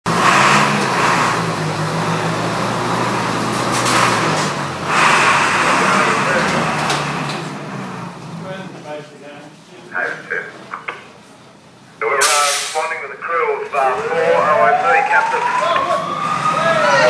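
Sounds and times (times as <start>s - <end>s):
fire truck engine droning: 0.0s - 17.0s
loud engine bursts: 0.1s - 8.8s, 12.0s - 17.0s.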